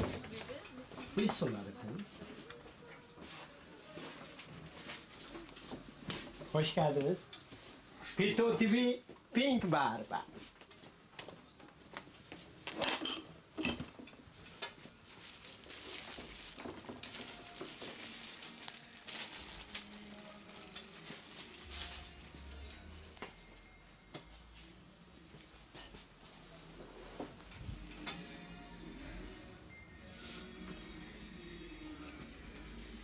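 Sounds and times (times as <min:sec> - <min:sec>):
plastic sheet and paper crinkling: 0:14.6 - 0:22.8.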